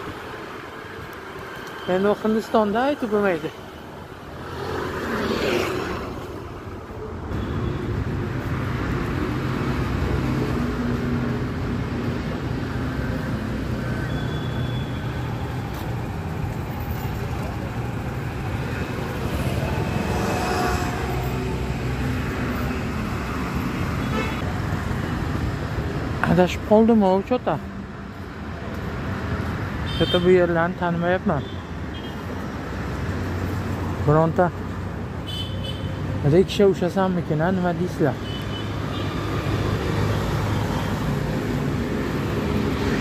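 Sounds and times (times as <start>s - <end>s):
passing cars and motorbikes: 0.0s - 43.0s.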